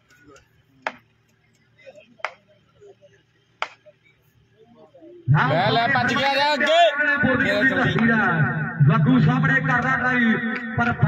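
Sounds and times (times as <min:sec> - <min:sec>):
faint distant voices: 0:00.0 - 0:08.8.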